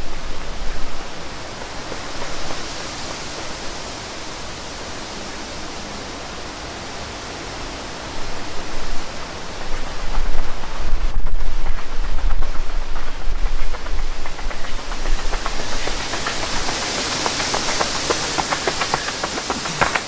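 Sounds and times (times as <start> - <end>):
gusts buffeting microphone: 0.0 - 20.0
wind on microphone: 0.0 - 20.0.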